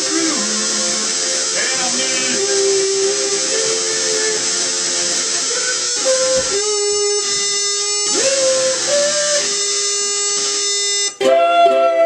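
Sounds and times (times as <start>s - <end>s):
ukulele music: 11.2s - 12.0s.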